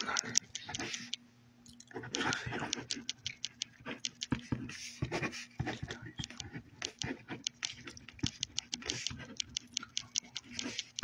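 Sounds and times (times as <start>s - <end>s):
faint steady hum: 0.0s - 11.0s
quick irregular clicks and taps: 0.0s - 11.0s.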